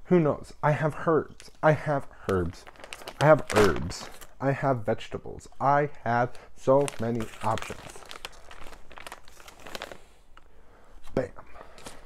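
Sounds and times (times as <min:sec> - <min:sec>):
plastic bag crinkling: 0:01.3 - 0:04.4, 0:06.2 - 0:10.5.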